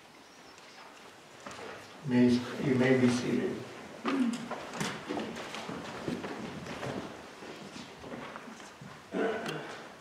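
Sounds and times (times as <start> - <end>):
faint shuffling and rustling: 0.7 - 10.0.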